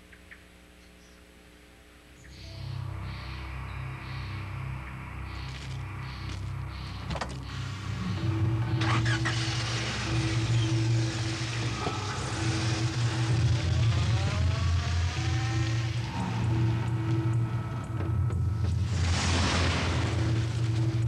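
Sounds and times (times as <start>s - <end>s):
background music: 2.3s - 21.0s
car engine running: 6.3s - 21.0s.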